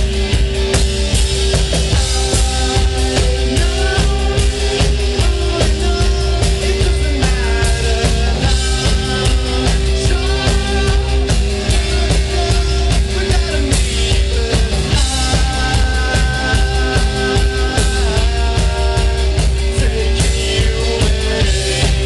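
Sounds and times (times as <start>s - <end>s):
drum kit beat: 0.0s - 22.0s
electric guitar: 0.0s - 22.0s
rock band playing live: 0.0s - 22.0s.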